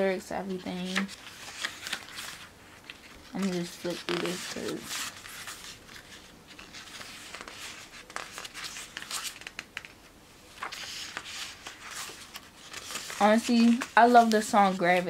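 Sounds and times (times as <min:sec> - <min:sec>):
photobook pages turning: 0:00.0 - 0:15.0.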